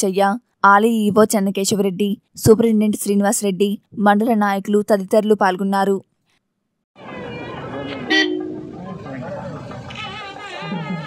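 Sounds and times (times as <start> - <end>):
crowd chatter: 7.0 - 11.0
vehicle horn toot: 7.3 - 8.7.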